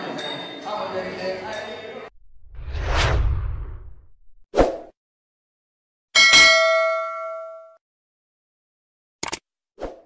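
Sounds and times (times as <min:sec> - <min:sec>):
whoosh with low rumble: 0:02.2 - 0:04.5.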